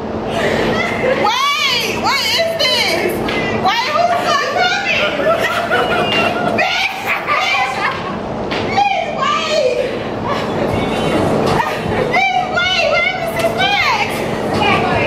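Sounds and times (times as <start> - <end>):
women shrieking and shouting: 0.7 - 8.1, 8.7 - 14.2.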